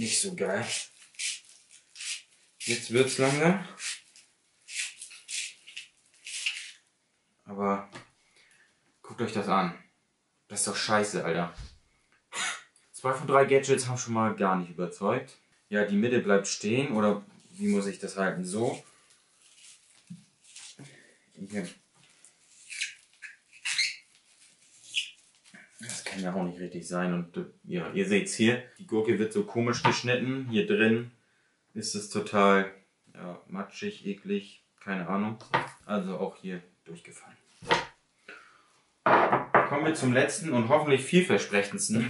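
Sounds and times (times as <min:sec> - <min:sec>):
spiral cutter scraping cucumber: 0:00.6 - 0:04.0.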